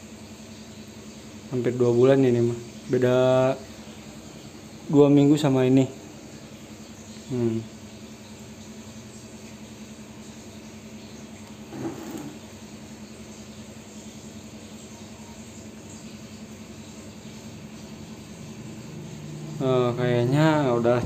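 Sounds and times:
aquarium air pumps humming: 0.0 - 21.0.

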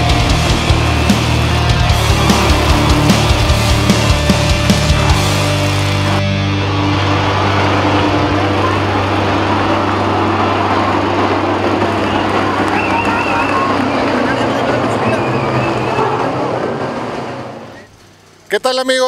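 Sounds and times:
racing truck engines droning: 0.0 - 19.0
road noise: 0.0 - 19.0.

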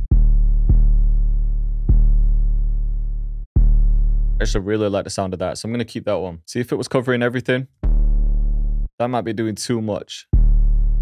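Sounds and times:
saturated bass notes: 0.0 - 4.8, 7.8 - 8.9, 10.3 - 11.0.

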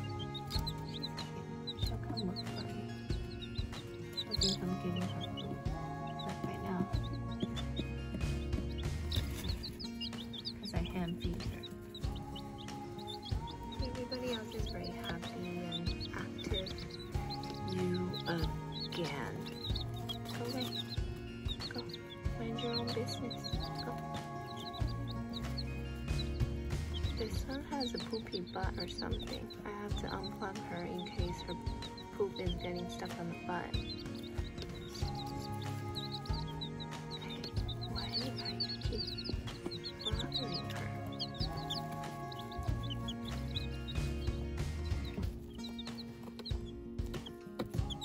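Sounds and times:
background music: 0.0 - 48.0
chicks peeping: 0.0 - 48.0.

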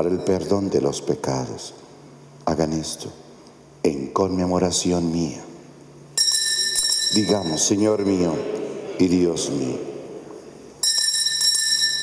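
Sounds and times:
altar bell ringing: 6.2 - 8.4, 10.8 - 12.0.

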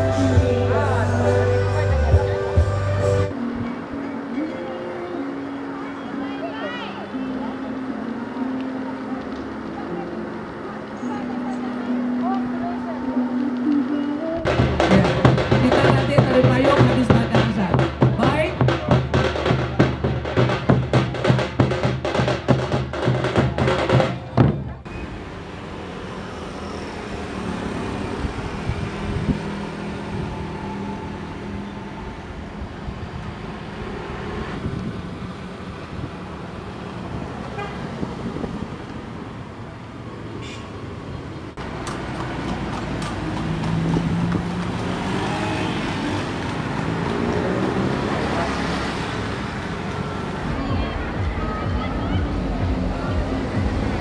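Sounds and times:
vehicles passing: 0.0 - 54.0
large drums fast beat: 14.4 - 24.8, 50.4 - 54.0
car horn tooting: 37.5 - 37.8.

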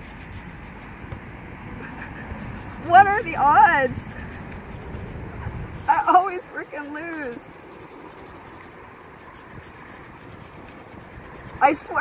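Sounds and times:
scratching lottery ticket: 0.0 - 0.9, 2.4 - 5.2, 5.8 - 12.0.

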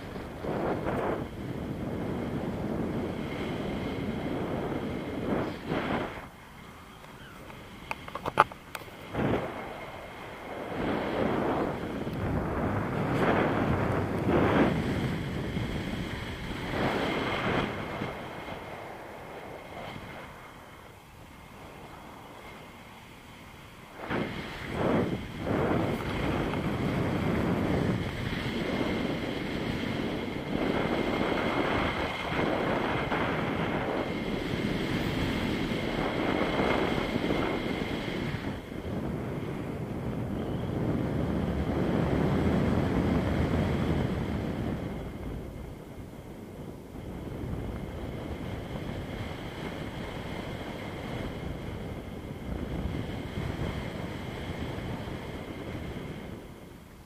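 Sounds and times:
wind rushing over microphone: 0.0 - 57.0.

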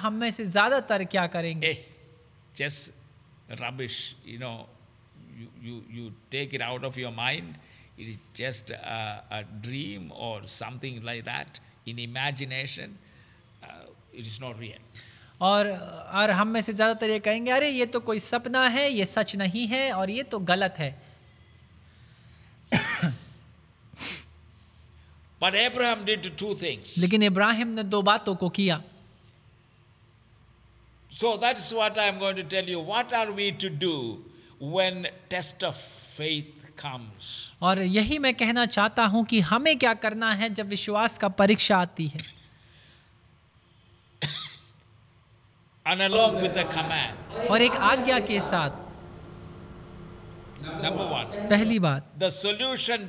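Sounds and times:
faint high whine: 0.0 - 53.0
man speaking: 2.6 - 4.7, 5.3 - 13.0, 13.6 - 14.8, 25.4 - 27.4, 45.9 - 53.0
man clearing throat: 22.7 - 23.3, 44.2 - 44.7
man coughing: 22.7 - 23.3, 44.2 - 44.7.

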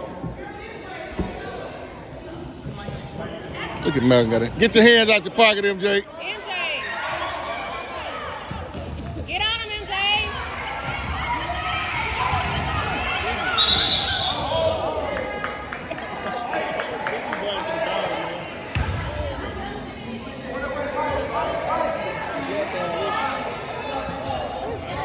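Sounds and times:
voices echoing in gym: 0.0 - 25.0.

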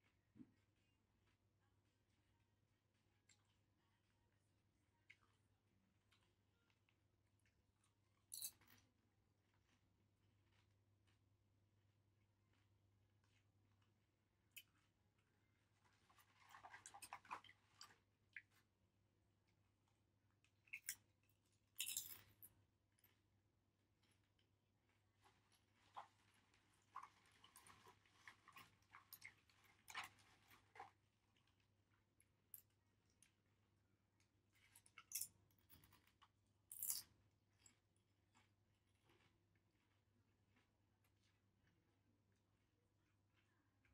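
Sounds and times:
faint low hum: 0.0 - 43.9.

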